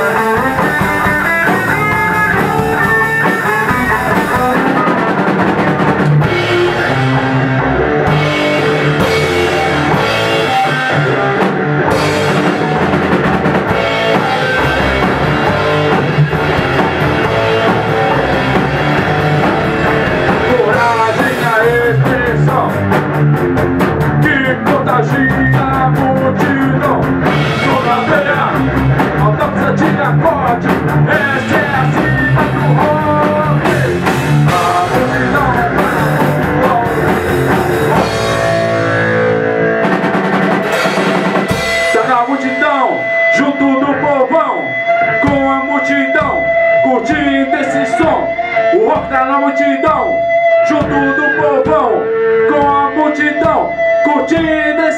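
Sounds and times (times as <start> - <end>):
drum kit: 0.0 - 54.9
electric bass: 0.0 - 54.9
electric guitar lead: 0.0 - 54.9.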